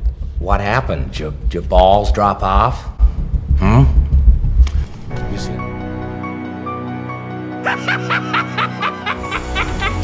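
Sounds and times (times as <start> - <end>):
heavy bass beat: 0.0 - 5.8
man cackling: 7.6 - 10.0.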